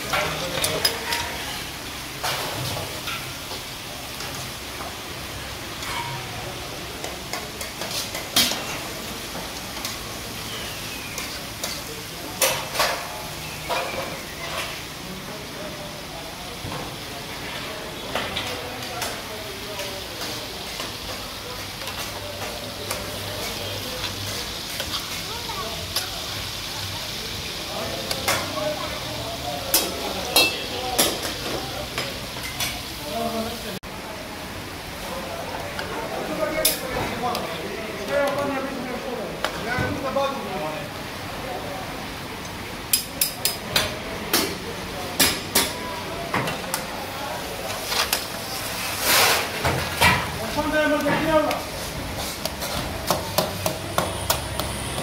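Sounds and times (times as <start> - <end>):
metal pans and utensils clanking: 0.0 - 15.0, 16.6 - 26.6, 27.8 - 33.0, 35.7 - 38.6, 42.9 - 55.0
food sizzling in a wok: 0.0 - 55.0
metal ladle clinking on pan: 30.3 - 31.2.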